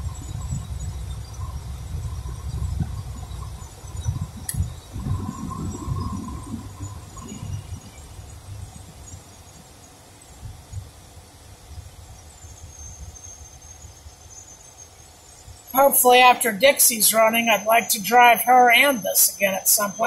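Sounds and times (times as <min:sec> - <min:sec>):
car road and engine rumble: 0:00.0 - 0:16.3.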